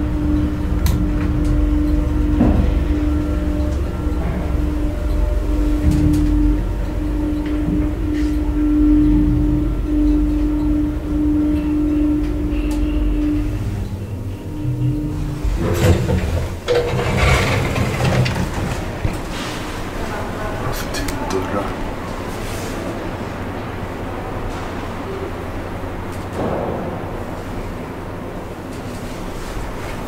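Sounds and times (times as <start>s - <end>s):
elevator motor hum: 0.0s - 30.0s
rustling clattering noise: 15.4s - 19.9s.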